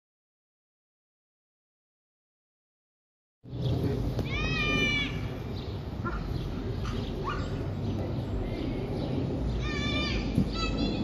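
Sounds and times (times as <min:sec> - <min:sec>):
steady low rumble: 0:03.5 - 0:11.0
dog yelping bark: 0:06.0 - 0:07.5.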